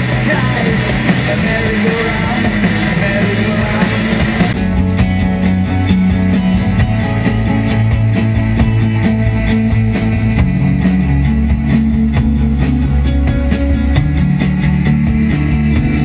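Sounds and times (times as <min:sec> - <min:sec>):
bass line: 0:00.0 - 0:16.0
drum strokes: 0:00.0 - 0:16.0
rock band playing: 0:00.0 - 0:16.0.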